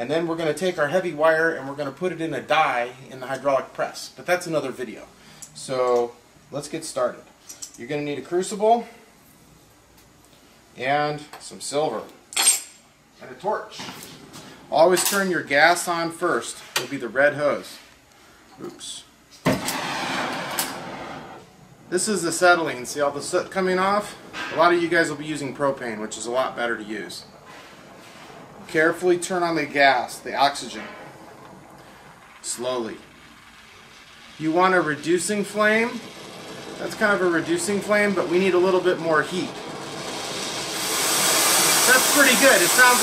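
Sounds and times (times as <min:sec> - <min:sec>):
torch flame hissing: 0:19.4 - 0:43.0.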